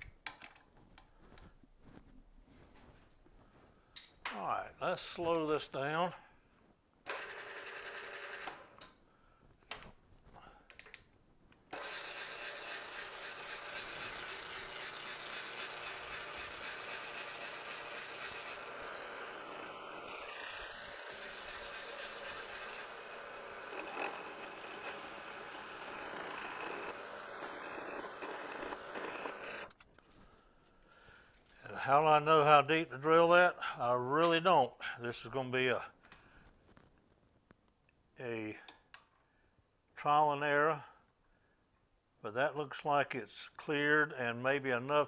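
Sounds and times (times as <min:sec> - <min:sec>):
drill bit cutting metal: 0:11.8 - 0:29.7.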